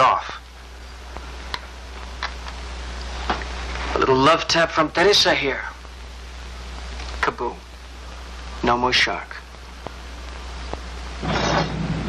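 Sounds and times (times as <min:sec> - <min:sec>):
low hum and hiss: 0:00.0 - 0:12.0.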